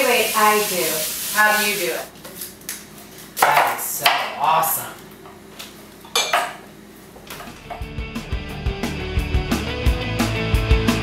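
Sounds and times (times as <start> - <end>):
background music with steady beat: 7.5 - 11.0.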